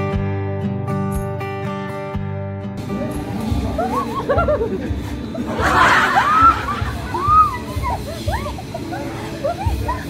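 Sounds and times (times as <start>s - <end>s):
background music: 0.0s - 10.0s
people laughing: 2.9s - 10.0s.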